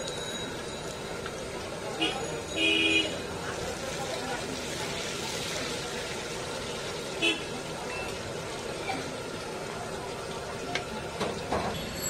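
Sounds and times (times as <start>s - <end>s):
street traffic: 0.0s - 12.0s
vegetables deep-frying in oil: 0.0s - 12.0s
voices: 1.2s - 11.7s.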